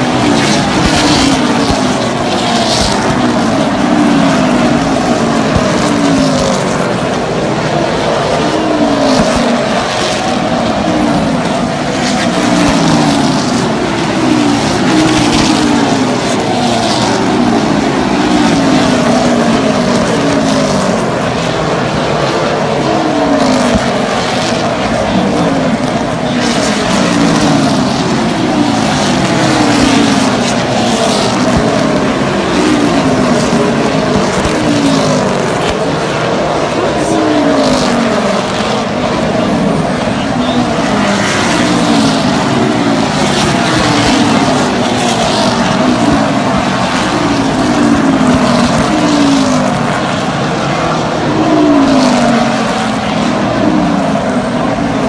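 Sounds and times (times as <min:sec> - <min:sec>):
race cars at full throttle: 0:00.0 - 0:55.0.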